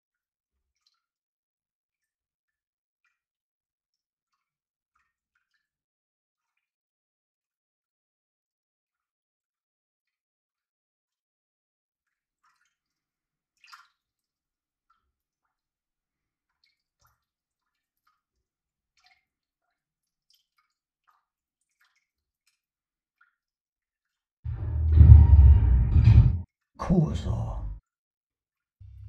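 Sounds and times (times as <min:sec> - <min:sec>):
faint water drips: 0:00.6 - 0:01.2, 0:03.9 - 0:05.8, 0:12.0 - 0:24.3
loud low rumbling boom: 0:24.5 - 0:27.8.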